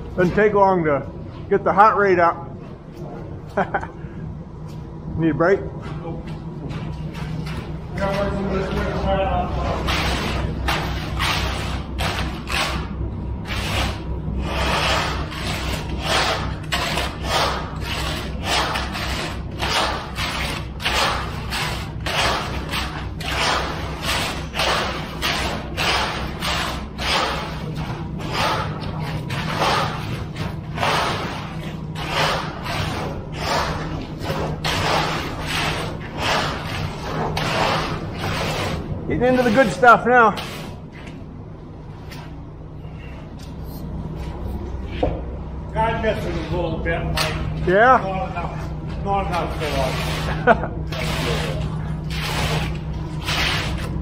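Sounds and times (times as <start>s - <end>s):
steady low hum: 0.0s - 54.0s
board scraping wet concrete: 9.6s - 40.8s, 49.2s - 54.0s.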